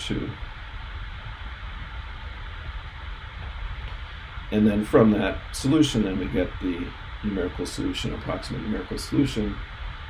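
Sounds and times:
low rumble with hiss: 0.0 - 10.0.

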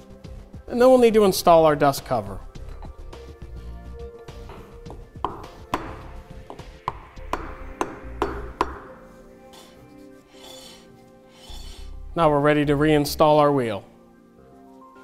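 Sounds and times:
background music: 0.0 - 15.0
hammer tapping wooden block: 4.5 - 8.9.

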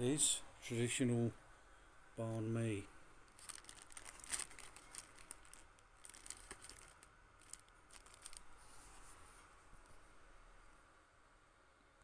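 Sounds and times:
paper wrapper crinkling: 3.3 - 9.0.

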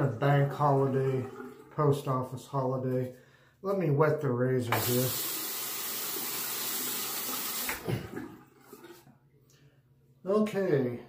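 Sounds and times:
sink faucet running: 4.7 - 8.0.

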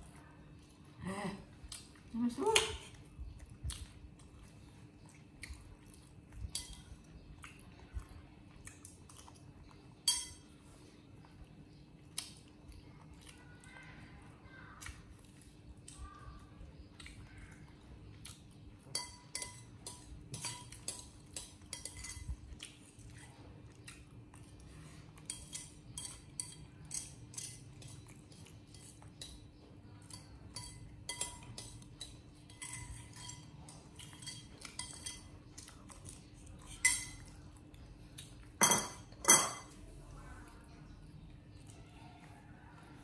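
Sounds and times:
metal spoon clinking in bowl: 6.5 - 6.9, 10.0 - 10.5, 18.9 - 22.4, 25.3 - 28.0, 30.0 - 35.4, 36.7 - 37.3, 38.6 - 39.7
spoon scraping ceramic bowl: 30.1 - 35.3.

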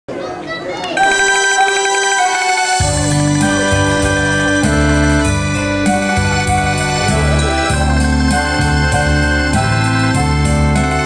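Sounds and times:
murmur of voices: 0.1 - 1.8, 2.5 - 11.0
electronic keyboard chord with tremolo: 1.0 - 11.0.

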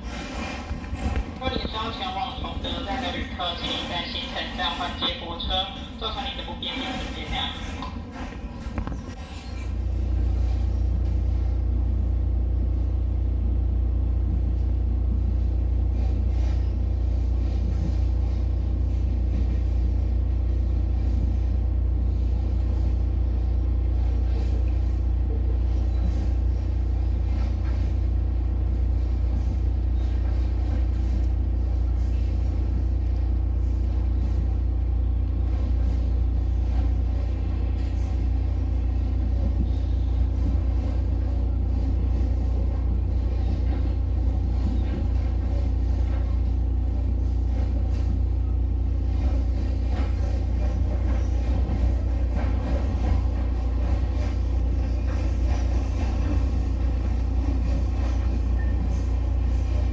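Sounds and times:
train rumbling inside carriage: 0.0 - 59.9.

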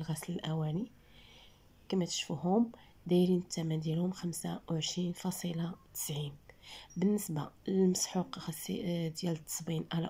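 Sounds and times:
woman talking: 0.0 - 1.0, 1.9 - 10.0.

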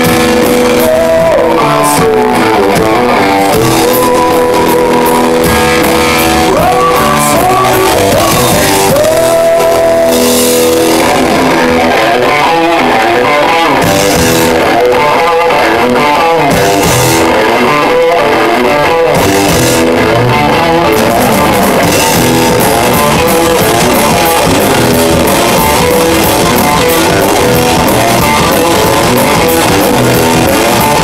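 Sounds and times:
bass guitar: 0.0 - 31.0
drum kit: 0.0 - 31.0
electric guitar: 0.0 - 31.0.

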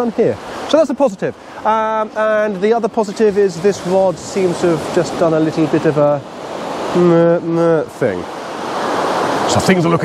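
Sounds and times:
surf washing: 0.0 - 10.0.

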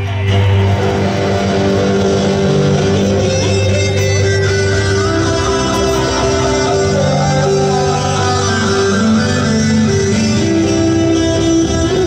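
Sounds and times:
electric guitar chords: 0.0 - 12.0.

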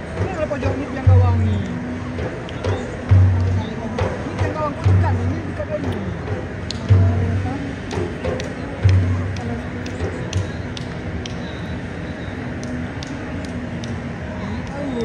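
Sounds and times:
bass drum beats: 0.0 - 11.4
sharp claps: 1.4 - 5.0, 5.8 - 7.0, 7.8 - 15.0.

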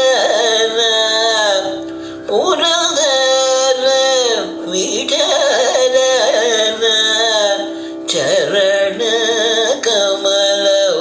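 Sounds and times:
man singing with ornamented notes: 0.0 - 11.0.

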